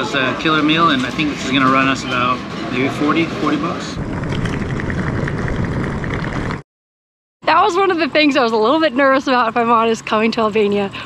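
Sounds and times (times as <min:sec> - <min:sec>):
suitcase wheels rolling on asphalt: 0:04.0 - 0:06.6.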